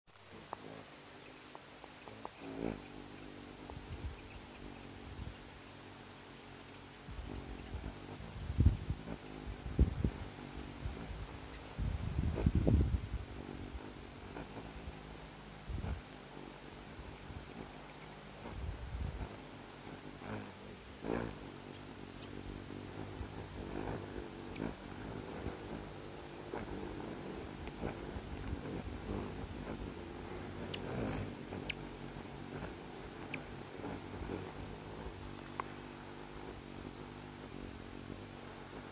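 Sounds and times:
hummingbird wings humming: 0:00.1 - 0:38.9.

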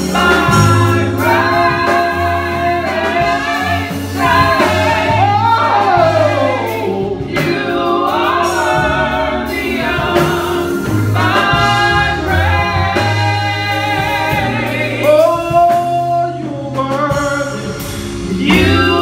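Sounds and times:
women singing gospel: 0:00.0 - 0:17.6, 0:18.2 - 0:19.0
low bass line: 0:00.0 - 0:19.0.

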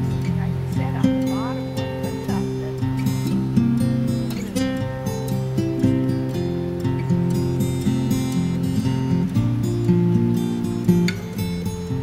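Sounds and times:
plucked acoustic guitar music: 0:00.0 - 0:12.0.

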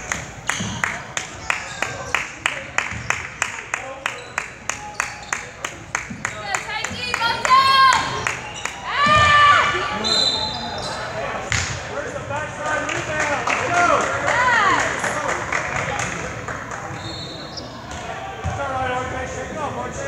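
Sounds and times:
spectators' voices echoing: 0:00.0 - 0:20.0.

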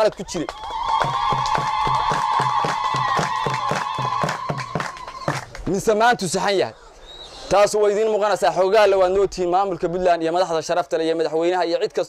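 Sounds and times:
crowd clapping in time: 0:00.0 - 0:05.9.

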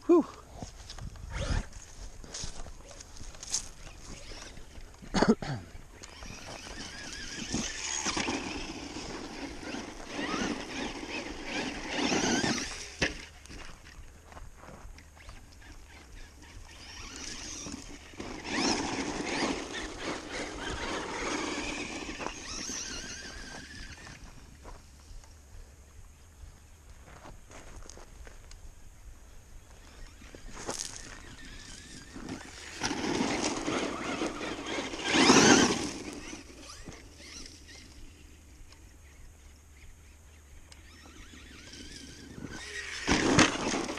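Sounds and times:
toy truck motor on gravel: 0:00.1 - 0:05.1, 0:05.7 - 0:43.9.

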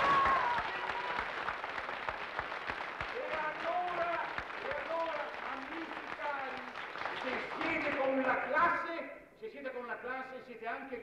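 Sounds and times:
audience applauding: 0:00.0 - 0:08.5.

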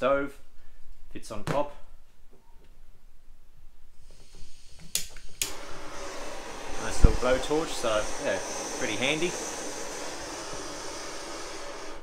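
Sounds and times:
gas hissing: 0:04.0 - 0:12.0
blowtorch flame rushing: 0:04.1 - 0:12.0.

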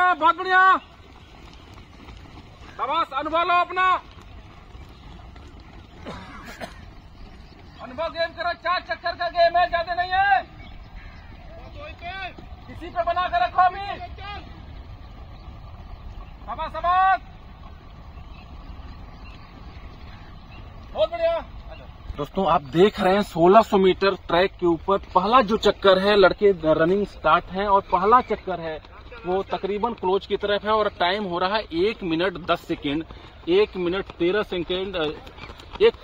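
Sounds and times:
footsteps of runners on dirt: 0:00.0 - 0:36.0
man shouting encouragement: 0:07.9 - 0:10.5, 0:11.8 - 0:14.5, 0:16.6 - 0:17.2.

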